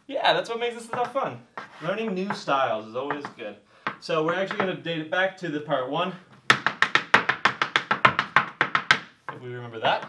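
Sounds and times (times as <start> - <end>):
hard shoes tapping on wooden board: 0.8 - 5.0, 6.3 - 10.0.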